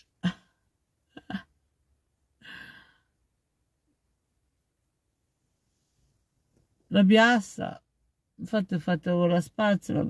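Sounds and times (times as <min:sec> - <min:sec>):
woman sighing: 0:02.4 - 0:03.1.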